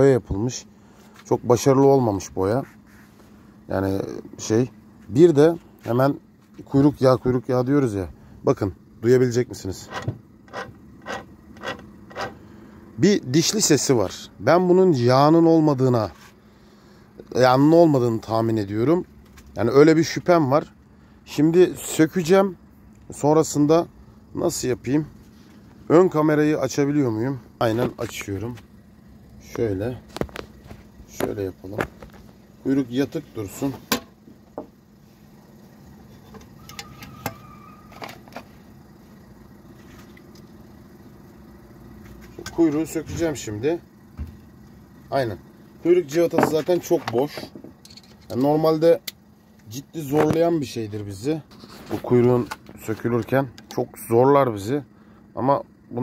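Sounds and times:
faint mechanical hum: 0:00.0 - 0:56.0.

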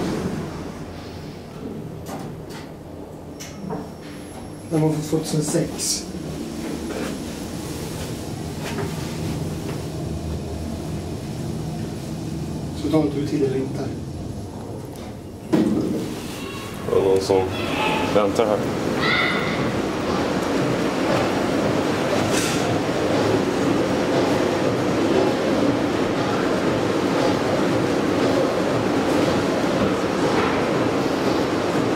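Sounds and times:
elevator hum and rumble: 0:00.0 - 0:31.9.

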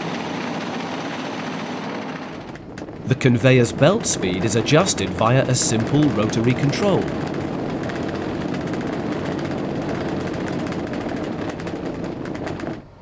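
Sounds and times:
conveyor belt rattling: 0:00.0 - 0:13.0.

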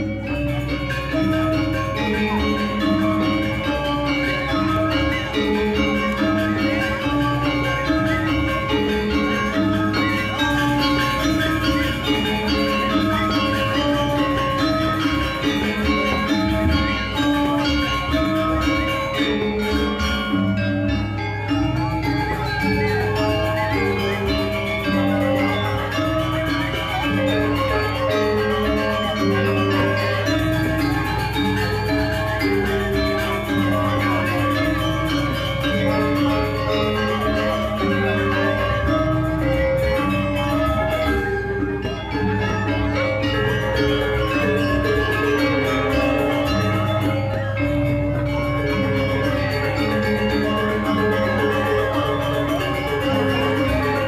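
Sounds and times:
gamelan music: 0:00.0 - 0:54.0
metallophones and gongs ringing: 0:00.0 - 0:54.0.

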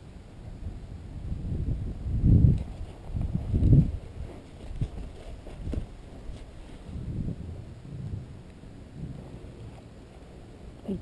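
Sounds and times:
wind rumbling on microphone: 0:00.0 - 0:11.0
hoof thuds on sand: 0:02.3 - 0:08.2.

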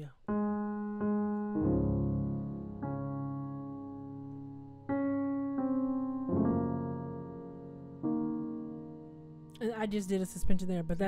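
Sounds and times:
piano chords: 0:00.2 - 0:11.0.

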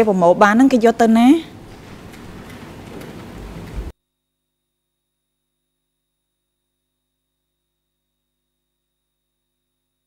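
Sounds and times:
microphone hiss: 0:00.0 - 0:03.9.

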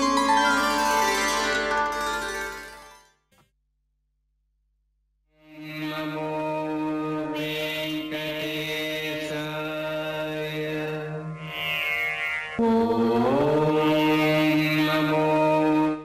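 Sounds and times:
chanted devotional melody: 0:00.0 - 0:03.2.

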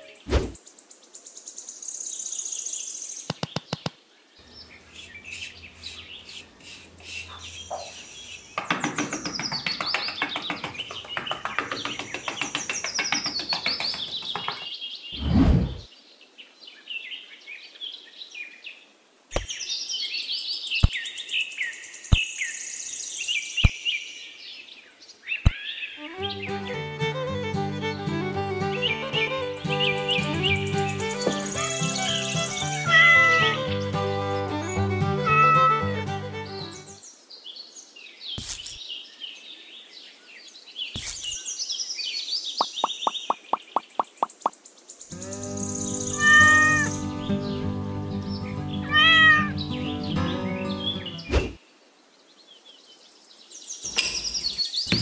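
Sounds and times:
birds chirping: 0:02.9 - 0:15.9, 0:24.9 - 0:37.2, 0:40.4 - 0:51.7, 0:53.4 - 0:55.0
fast run of clicks: 0:03.3 - 0:04.0, 0:06.6 - 0:14.7
sharp taps: 0:03.3 - 0:04.0, 0:04.9 - 0:14.7, 0:42.6 - 0:44.6
short loud whoosh: 0:15.2 - 0:15.9.

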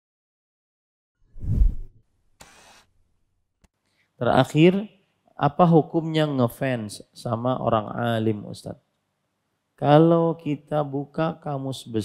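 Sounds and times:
brief soft hiss: 0:01.4 - 0:02.9.

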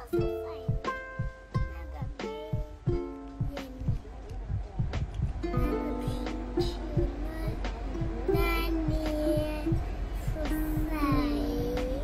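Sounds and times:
background music with plucked beat: 0:00.0 - 0:12.0
child singing long notes: 0:05.5 - 0:12.0.

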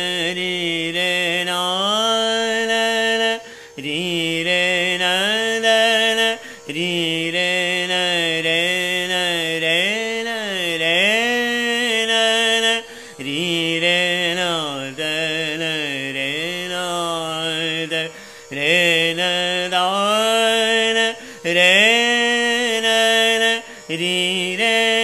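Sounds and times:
man singing long held notes: 0:00.0 - 0:25.0
tanpura drone: 0:00.0 - 0:25.0.

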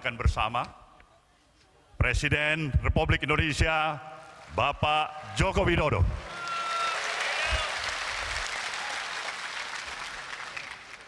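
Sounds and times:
large audience applauding: 0:06.2 - 0:11.0.

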